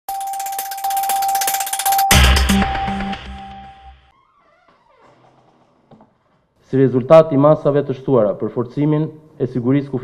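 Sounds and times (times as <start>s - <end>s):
ticking shimmer: 0.1s - 4.0s
steady high synth tone: 0.1s - 4.1s.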